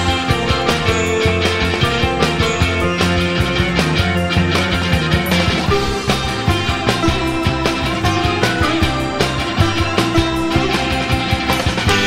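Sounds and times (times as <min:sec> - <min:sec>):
rock music with guitar and drums: 0:00.0 - 0:12.0.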